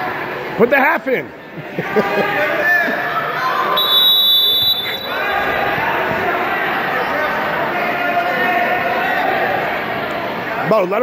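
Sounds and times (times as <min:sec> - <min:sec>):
spectator chatter: 0:00.0 - 0:11.0.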